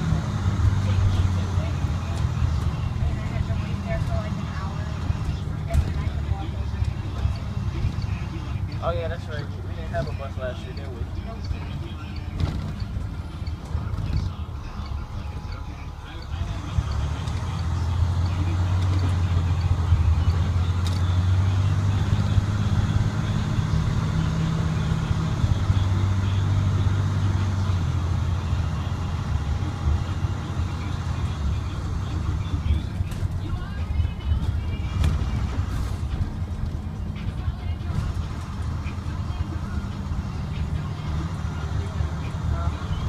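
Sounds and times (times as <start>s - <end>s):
diesel bus engine droning: 0.0s - 43.0s.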